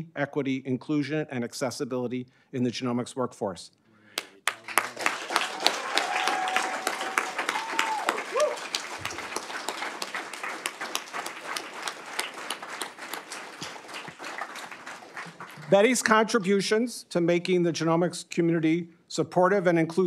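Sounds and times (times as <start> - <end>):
audience applauding: 4.2 - 16.2.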